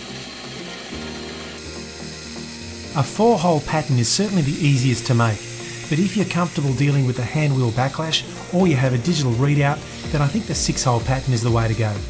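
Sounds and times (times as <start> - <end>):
mill-drill cutting brass: 0.0 - 12.0.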